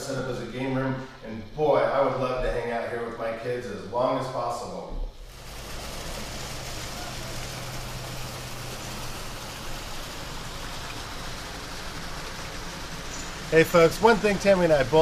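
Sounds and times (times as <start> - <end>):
water pouring into pool: 5.2 - 15.0.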